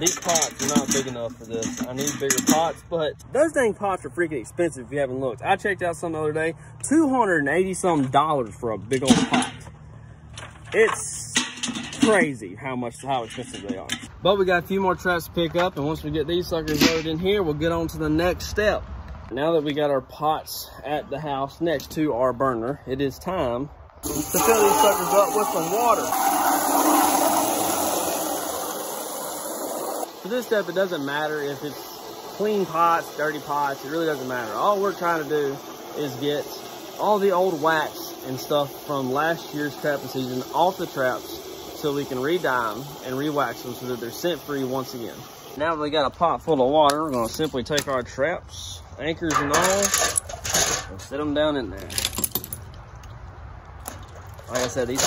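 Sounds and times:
hose water pouring into metal pot: 0.0 - 2.8, 24.0 - 45.6
metal traps and chains clinking: 49.3 - 51.1, 51.8 - 52.8.

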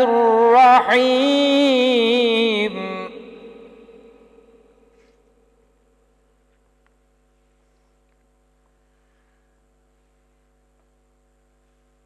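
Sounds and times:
faint mains hum: 0.0 - 12.0.

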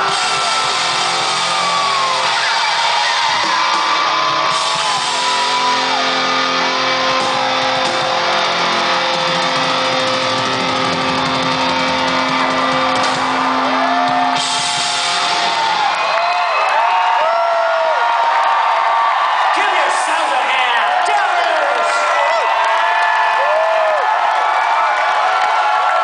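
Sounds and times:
rock band holding a chord: 0.0 - 16.0
crowd cheering and whooping: 0.0 - 26.0.

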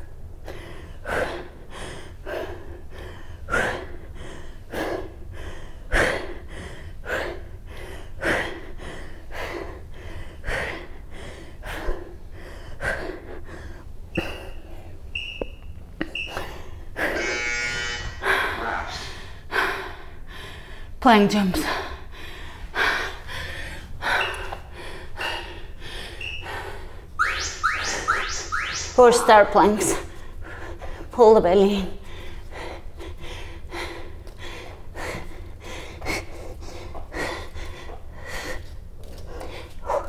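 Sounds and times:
electronic buzz: 17.0 - 19.0, 27.2 - 29.5
short high electronic beeps: 27.2 - 29.5.

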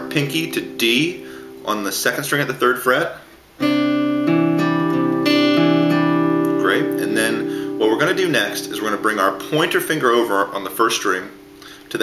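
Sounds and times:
fingerpicked acoustic guitar: 0.0 - 2.4, 3.6 - 11.9.

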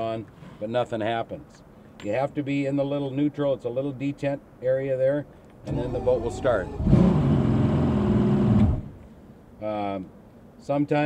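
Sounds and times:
outboard motor starter cranking: 5.7 - 8.9.

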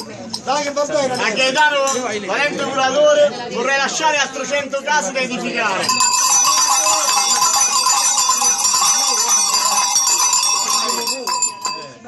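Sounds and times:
bells jangling: 5.8 - 12.0.

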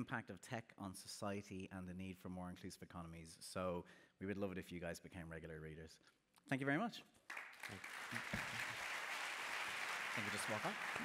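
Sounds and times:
audience applause: 7.3 - 11.0.

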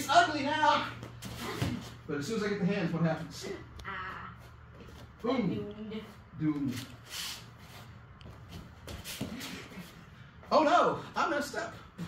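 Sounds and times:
bare feet shuffling on mats: 4.1 - 10.6.

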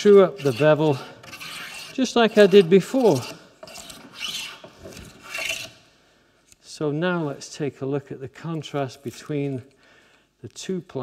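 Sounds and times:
plane rasping along wood: 0.0 - 5.8.

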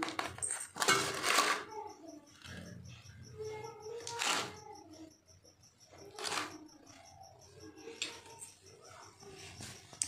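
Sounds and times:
steel bowls and utensil clinking: 0.0 - 2.9.

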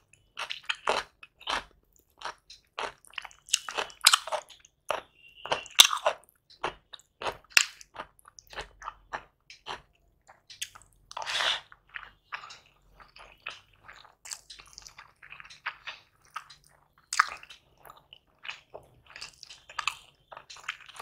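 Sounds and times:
chewing and lip smacks: 0.1 - 21.0.

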